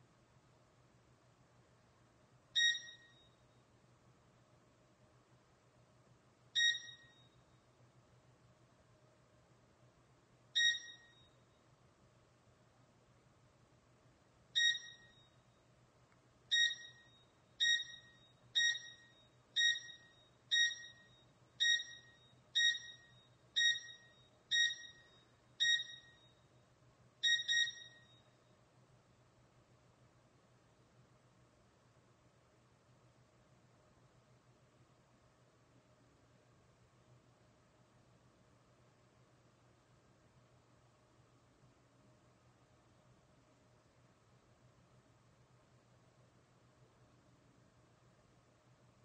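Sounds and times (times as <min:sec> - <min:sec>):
faint steady hum: 0:00.0 - 0:49.0
electronic alarm beeping: 0:02.6 - 0:03.4, 0:06.6 - 0:07.4, 0:10.6 - 0:11.4, 0:14.6 - 0:15.4, 0:16.5 - 0:26.4, 0:27.2 - 0:28.3.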